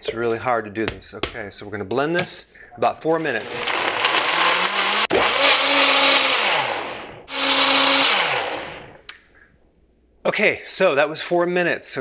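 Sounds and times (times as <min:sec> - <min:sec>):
blender running: 0:03.2 - 0:09.0.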